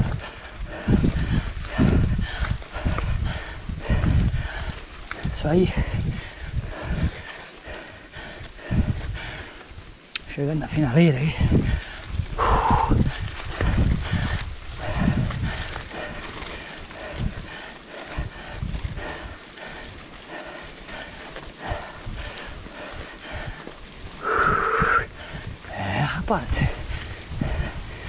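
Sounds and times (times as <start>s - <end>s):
short voice-like call: 24.2s - 25.1s.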